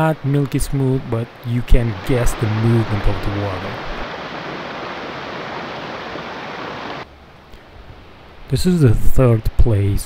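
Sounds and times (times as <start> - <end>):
stream rushing over rocks: 0.0 - 7.1.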